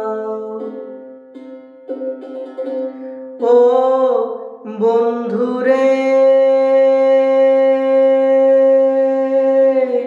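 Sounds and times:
man singing long held note: 3.4 - 10.0.

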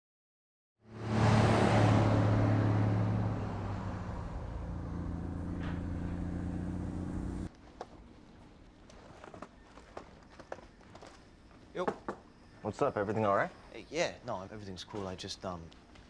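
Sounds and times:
motor vehicle passing: 0.8 - 7.5
low engine hum: 0.9 - 7.5.

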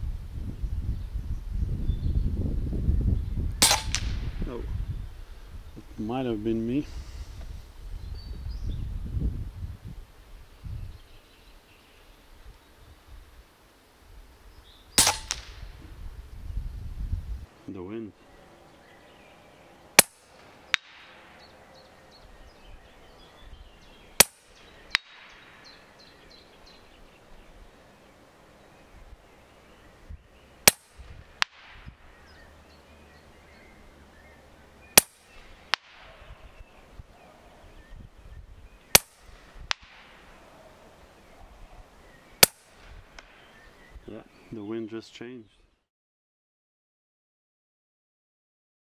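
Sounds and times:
pellet hitting target: 3.6 - 4.4, 20.0 - 21.2, 24.2 - 25.4, 35.0 - 36.2, 39.0 - 40.1
air rifle shots: 3.6 - 4.5, 15.0 - 15.7, 20.0 - 21.5, 24.2 - 25.6, 30.6 - 32.0, 35.0 - 36.4, 38.9 - 40.3, 42.4 - 43.4.

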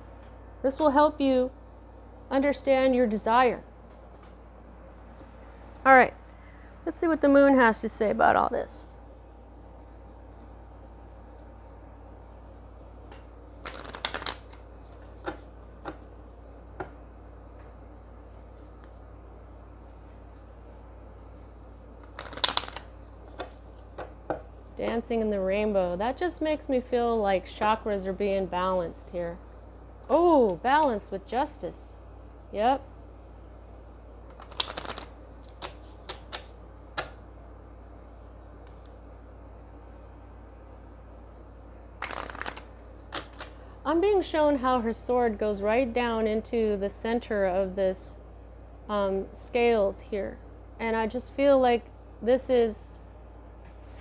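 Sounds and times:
low room hum: 0.0 - 54.0
cards being shuffled: 13.1 - 16.1, 22.0 - 24.2, 34.3 - 37.2, 42.0 - 43.6
sharp card snaps: 34.3 - 37.2.

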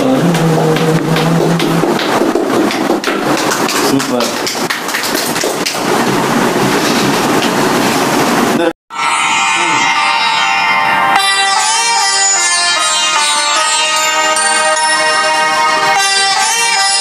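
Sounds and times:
group clapping rapidly: 0.0 - 6.5.

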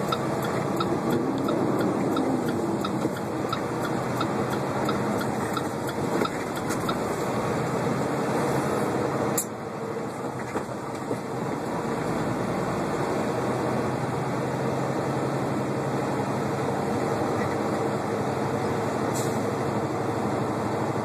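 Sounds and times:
diesel engine rumble: 0.0 - 21.0
road noise: 0.0 - 21.0.

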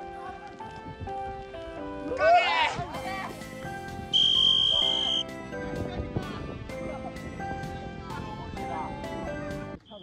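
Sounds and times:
background music: 0.0 - 9.9
referee whistle: 4.1 - 5.2.

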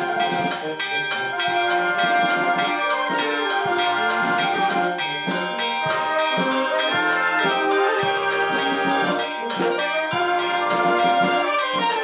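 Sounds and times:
wind band playing slow march: 0.0 - 12.0.

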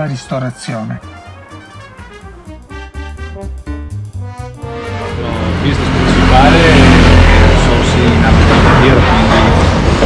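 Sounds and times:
vehicle engine running: 4.0 - 10.0
voices: 5.0 - 9.7.

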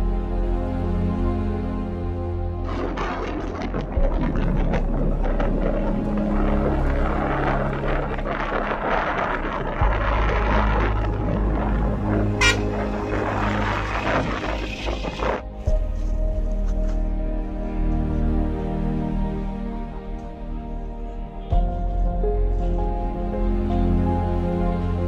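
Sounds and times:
soft background music: 0.0 - 25.0
outdoor rumbling: 0.8 - 24.5.

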